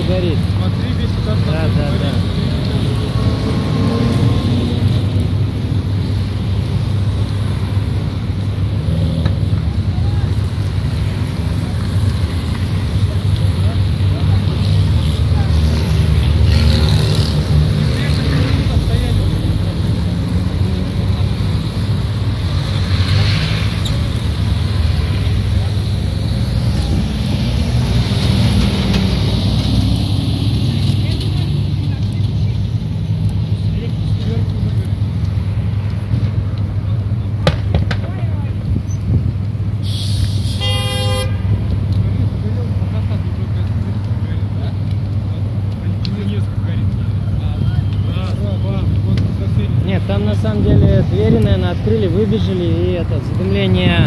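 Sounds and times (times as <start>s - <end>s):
road traffic passing: 0.0s - 54.0s
car horn toot: 40.5s - 41.4s.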